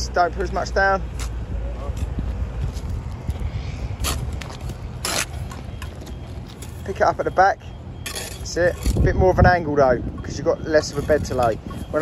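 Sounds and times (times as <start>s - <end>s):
low rumble: 1.4s - 6.9s.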